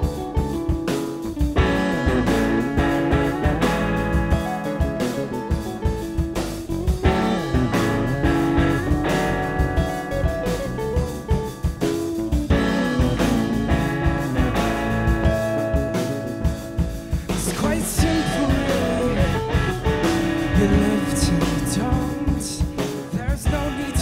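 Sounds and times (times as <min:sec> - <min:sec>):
bass guitar: 0:00.0 - 0:24.0
drum kit: 0:00.0 - 0:24.0
electric guitars: 0:00.0 - 0:24.0.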